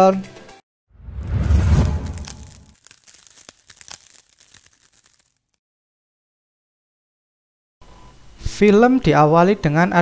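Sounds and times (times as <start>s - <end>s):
deep booming swell: 1.0s - 2.7s
crackling sparkling clicks: 2.0s - 5.6s.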